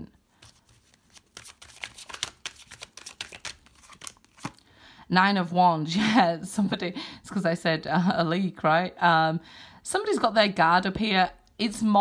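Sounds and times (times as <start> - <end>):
cards being shuffled: 0.4 - 4.6.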